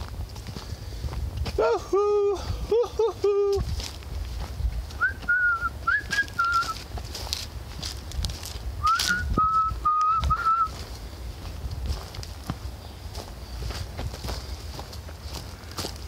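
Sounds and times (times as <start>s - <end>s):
footsteps crunching on dry leaves: 0.0s - 1.8s, 3.2s - 16.0s
person whistling tunes: 5.0s - 6.8s, 8.8s - 10.8s.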